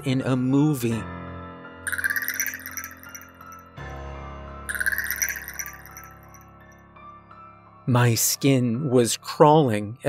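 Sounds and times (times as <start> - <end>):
rapid chittering clicks: 1.9 - 3.6, 4.7 - 6.4.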